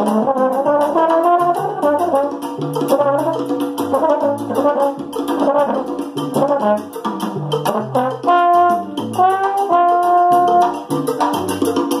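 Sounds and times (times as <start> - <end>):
latin jazz backing track: 0.0 - 12.0
trombone holding note: 7.7 - 10.8.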